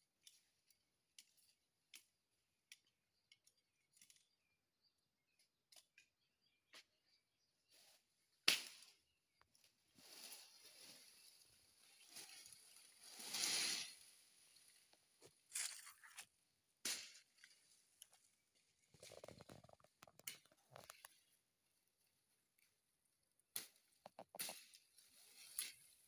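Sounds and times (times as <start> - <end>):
rustling of leaves: 10.0 - 16.3, 24.4 - 26.0
sharp crackle: 10.0 - 21.3, 23.5 - 26.0.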